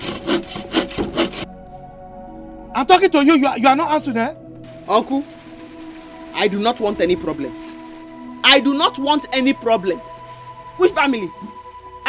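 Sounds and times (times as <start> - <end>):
hand saw cutting wood: 0.0 - 1.5.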